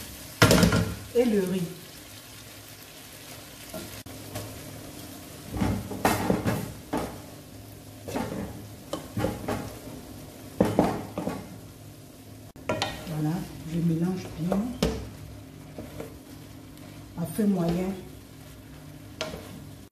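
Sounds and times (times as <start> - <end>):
spatula scraping in frying pan: 14.2 - 19.9.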